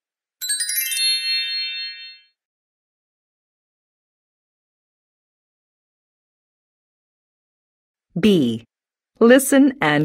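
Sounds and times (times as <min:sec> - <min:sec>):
bright chime: 0:00.4 - 0:02.4.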